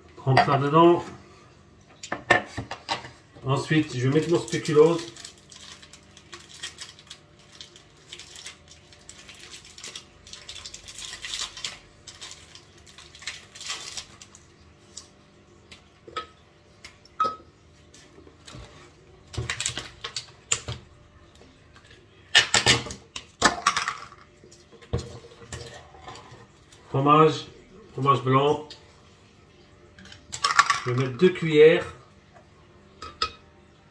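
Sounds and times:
plastic wrapper crinkling and tearing: 0:03.8 - 0:15.9, 0:19.3 - 0:20.4.

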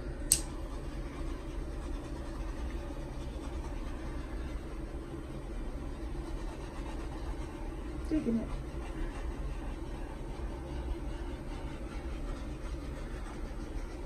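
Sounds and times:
sharp click: 0:00.3 - 0:00.5.

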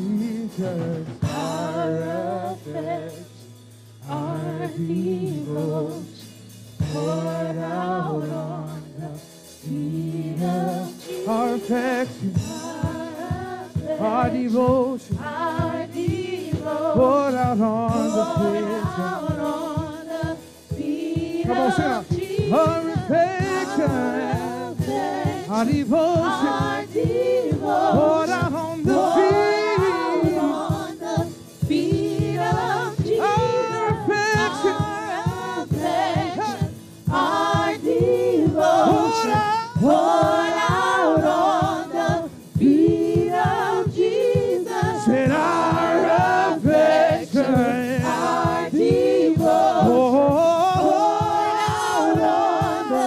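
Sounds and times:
woman and man singing gospel: 0:00.0 - 0:53.0
steady low beat: 0:11.3 - 0:53.0.

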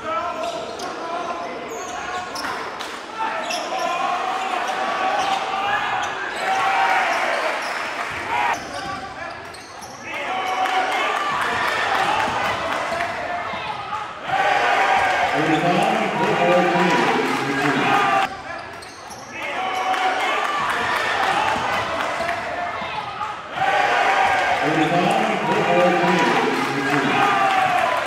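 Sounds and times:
indistinct shouts and chatter: 0:10.0 - 0:18.6, 0:19.3 - 0:28.0.

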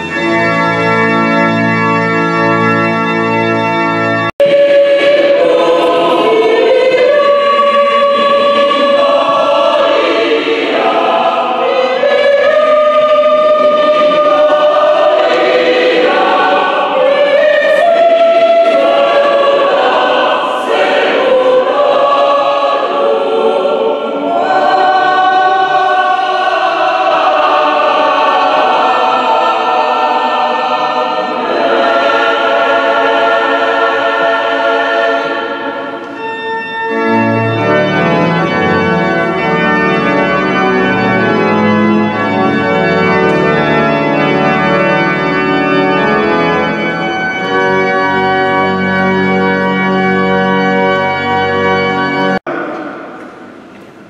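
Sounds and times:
pipe organ chord: 0:00.0 - 0:54.0
choir singing a hymn: 0:04.0 - 0:53.9.

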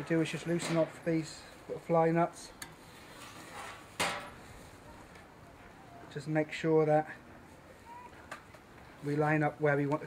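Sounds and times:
soft handling sounds: 0:00.3 - 0:05.8.

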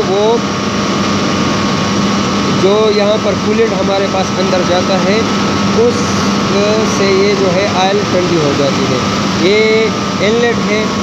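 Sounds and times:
generator rushing and humming: 0:00.0 - 0:11.0
high steady whine: 0:00.0 - 0:11.0
man's voice: 0:02.6 - 0:11.0.

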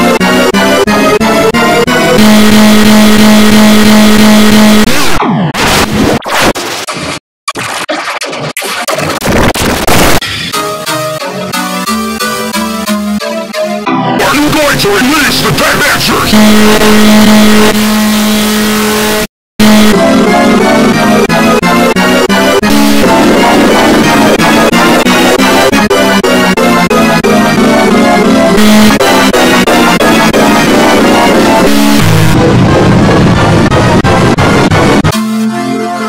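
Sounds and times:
distorted buzzing tone: 0:00.0 - 0:06.6, 0:15.4 - 0:35.8
choppy glitch noise: 0:00.0 - 0:10.2, 0:14.2 - 0:35.7.

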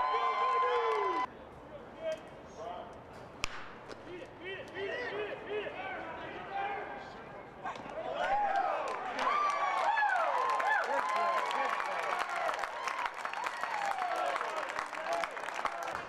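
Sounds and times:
bat cracking ball: 0:03.4 - 0:04.1.

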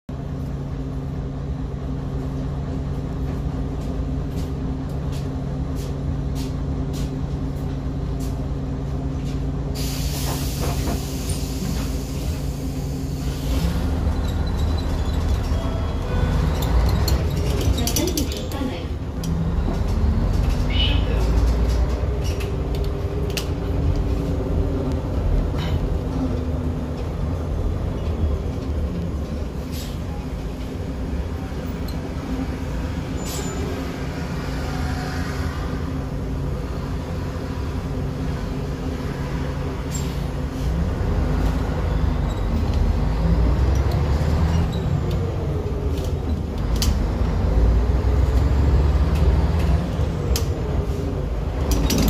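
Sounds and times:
bus diesel engine rumbling: 0:00.1 - 0:52.0.

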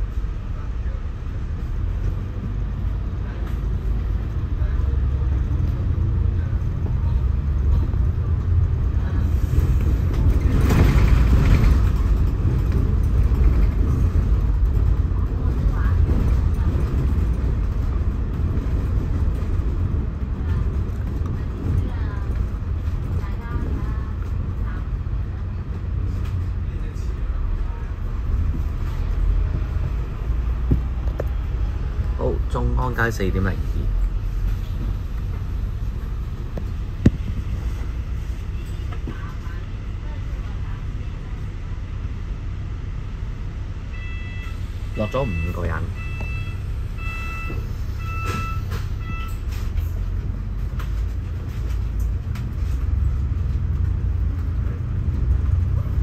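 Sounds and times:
bus engine and road rumble: 0:00.0 - 0:56.0.

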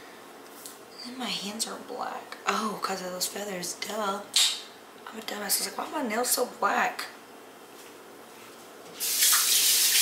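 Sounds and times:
faucet water running: 0:09.0 - 0:10.0.

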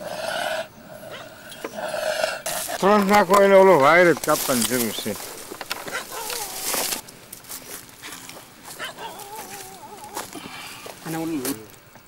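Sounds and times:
hyena whimpering: 0:05.9 - 0:07.0, 0:08.8 - 0:10.9.

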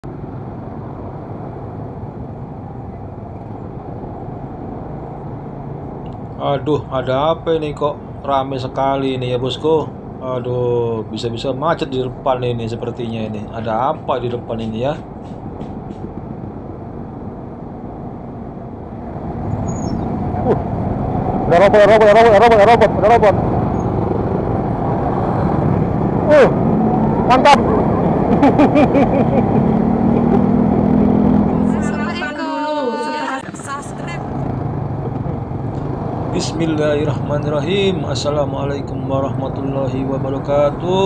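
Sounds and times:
surrounding traffic noise: 0:00.0 - 0:41.0
motor scooter engine humming: 0:19.4 - 0:35.6.

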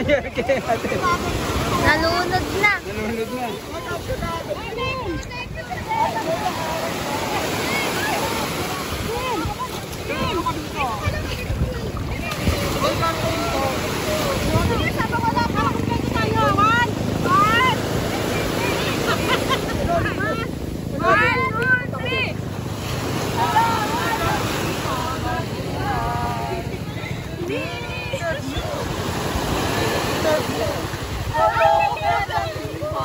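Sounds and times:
engine rumbling: 0:00.0 - 0:33.0
people talking and calling out: 0:00.0 - 0:33.0
low engine drone: 0:14.2 - 0:29.3.

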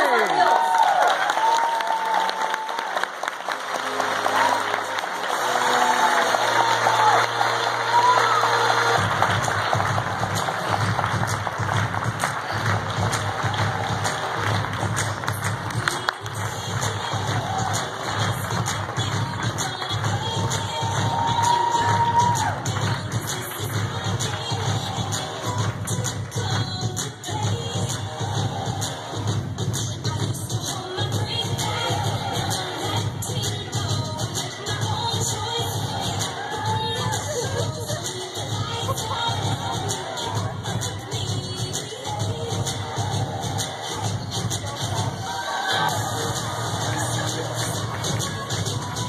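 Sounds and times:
crowd cheering and applauding: 0:00.0 - 0:49.0
music: 0:00.0 - 0:49.0
pulsing bass beat: 0:09.0 - 0:45.3.

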